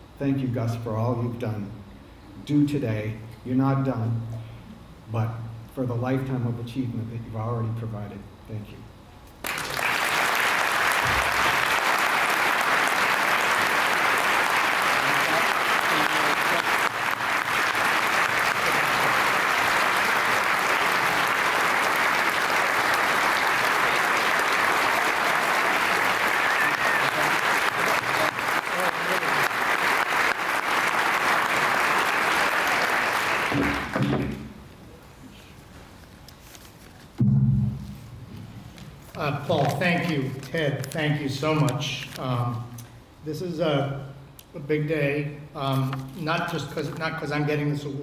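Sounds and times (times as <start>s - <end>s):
audience applauding: 9.4s - 34.4s.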